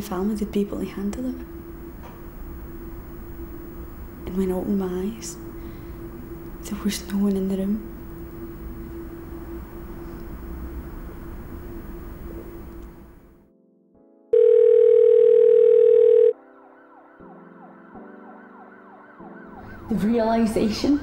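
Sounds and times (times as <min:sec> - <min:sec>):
steady hum: 0:00.0 - 0:13.4
sirens wailing: 0:16.4 - 0:21.0.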